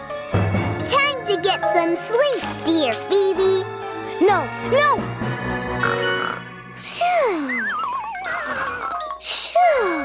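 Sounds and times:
light background music: 0.0s - 10.0s
cartoon girl yawning: 6.9s - 10.0s.

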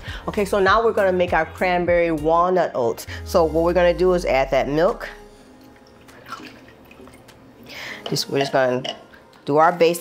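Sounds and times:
liquid trickling and splashing: 5.5s - 8.1s.

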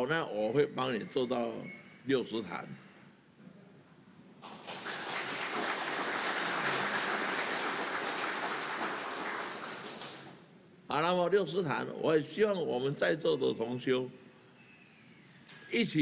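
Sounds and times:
audience applauding: 4.4s - 10.4s.

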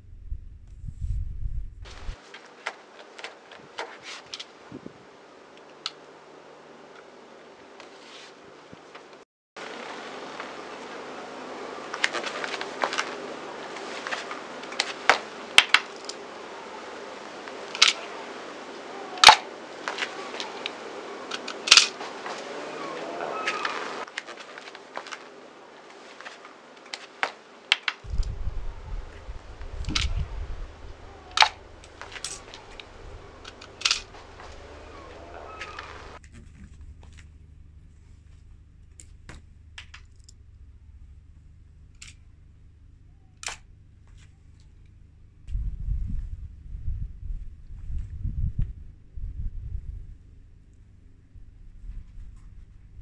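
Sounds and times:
car rumbling: 28.1s - 44.4s.

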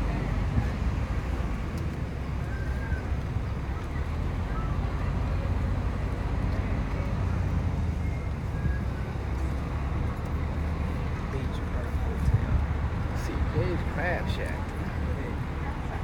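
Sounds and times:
bus engine and road noise: 0.0s - 16.0s.

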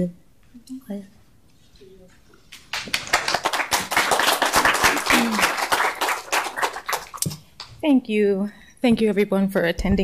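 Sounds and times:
audience applauding: 2.6s - 7.4s.

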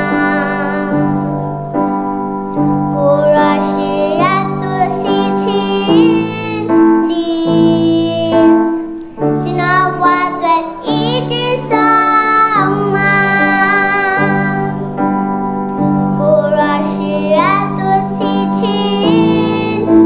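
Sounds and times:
girl singing: 0.0s - 1.8s, 2.5s - 20.0s
keyboard chords: 0.0s - 20.0s.

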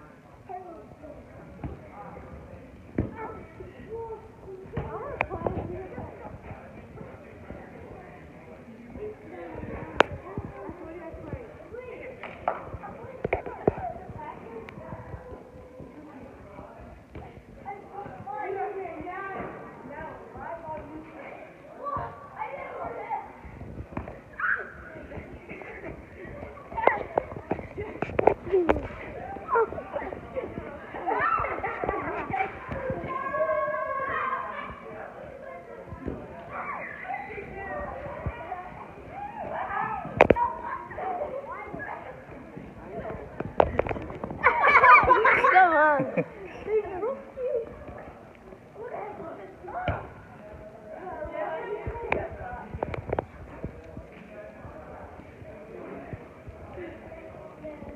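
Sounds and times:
children's voices: 0.0s - 57.9s
children shouting during play: 24.3s - 25.0s, 30.9s - 35.7s, 36.4s - 42.2s.

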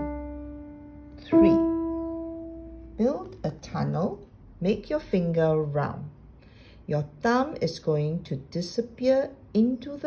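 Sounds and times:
piano note ringing: 0.0s - 3.4s
person speaking: 1.1s - 2.1s, 2.8s - 6.1s.

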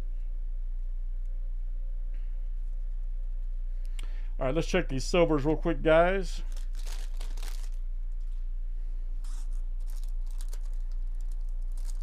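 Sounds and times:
low electrical hum: 0.0s - 12.0s
foil wrapper crinkling and tearing: 6.4s - 7.8s, 9.2s - 12.0s.

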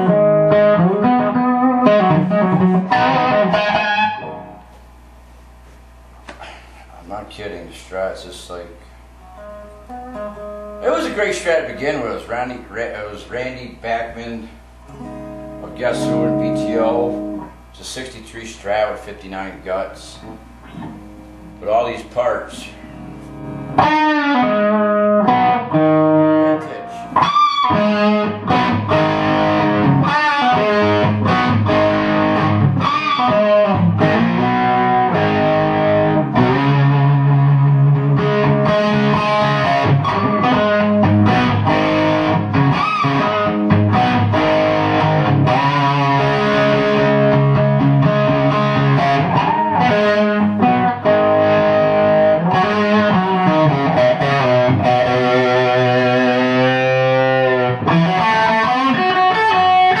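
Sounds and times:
overdriven electric guitar lead: 0.0s - 4.8s, 9.2s - 11.4s, 14.4s - 17.7s, 20.2s - 21.6s, 22.8s - 60.0s.

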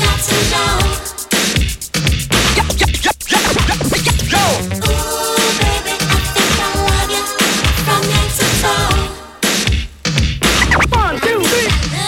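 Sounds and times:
music: 0.0s - 12.0s
record scratching: 2.4s - 5.0s, 10.4s - 11.5s.

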